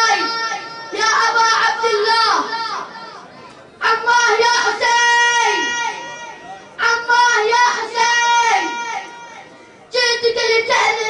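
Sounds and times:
child declaiming into a microphone: 0.0 - 11.0.

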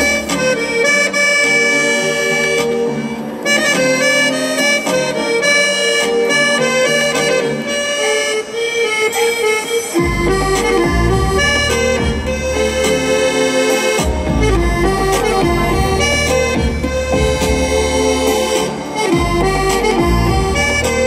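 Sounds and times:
accordion melody: 0.0 - 21.0.

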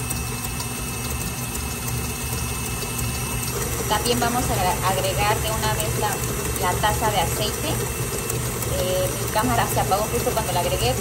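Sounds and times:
stand mixer motor humming: 0.0 - 11.0.

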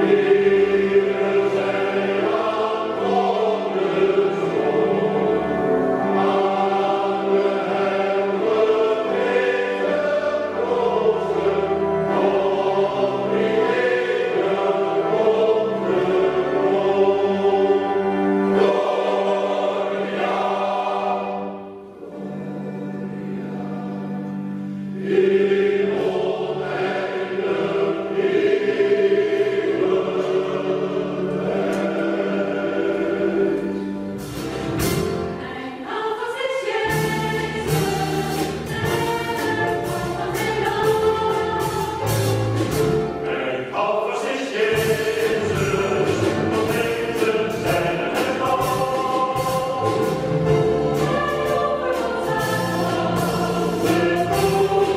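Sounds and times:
choir singing sacred music: 0.0 - 54.9.

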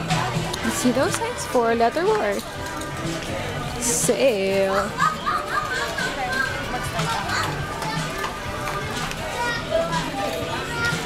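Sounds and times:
background music: 0.0 - 11.0
shoppers chattering: 0.0 - 11.0.

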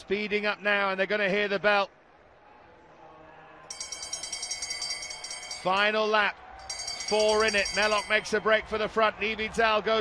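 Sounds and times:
faint stadium crowd: 0.0 - 10.0
bell ringing rapidly: 3.7 - 8.5.

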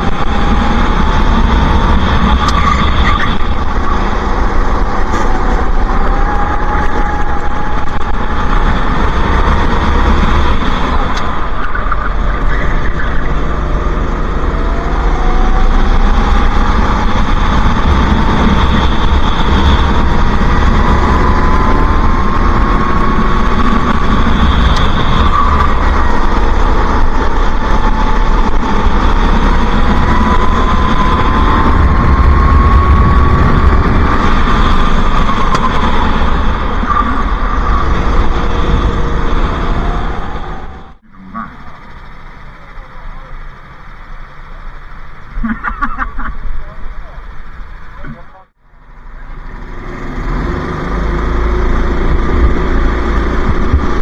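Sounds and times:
racing kart engine: 0.0 - 54.0.

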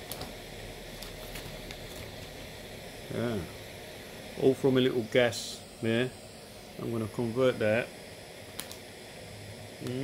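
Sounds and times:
camping stove hissing: 0.0 - 10.0.

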